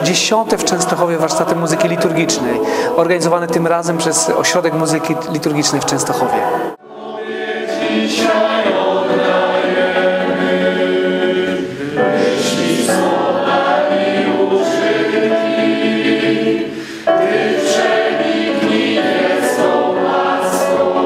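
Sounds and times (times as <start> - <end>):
mixed choir singing in harmony: 0.0 - 21.0.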